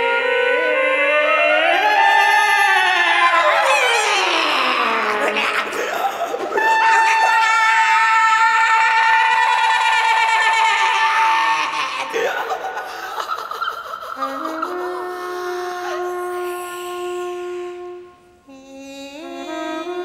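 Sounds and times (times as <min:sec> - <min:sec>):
woman vocalising: 0:00.0 - 0:16.7.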